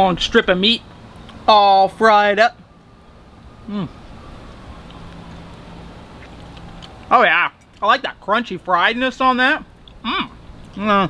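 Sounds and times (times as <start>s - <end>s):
man's appreciative mmm: 3.6s - 4.0s
person chewing: 3.6s - 7.9s, 9.7s - 10.8s.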